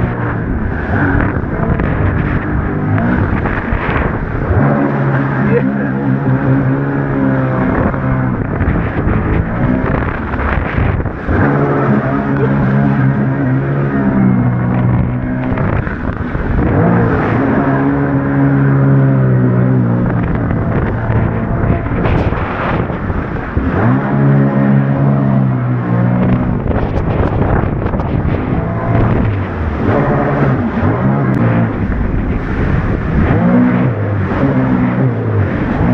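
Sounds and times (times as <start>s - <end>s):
jet ski engine revving: 0.0s - 35.9s.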